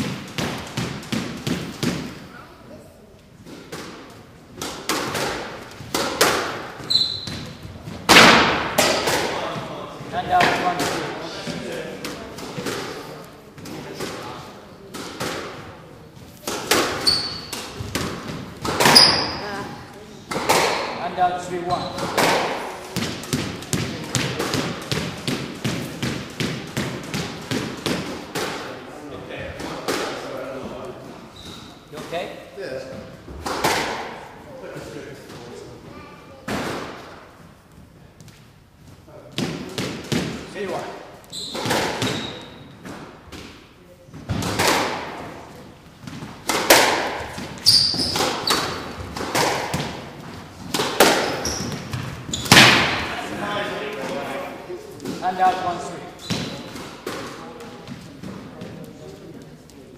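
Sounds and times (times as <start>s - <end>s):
squash ball impacts: 0.0s - 2.4s, 3.4s - 28.8s, 29.4s - 30.7s, 32.8s - 34.3s, 36.4s - 37.3s, 39.1s - 59.0s.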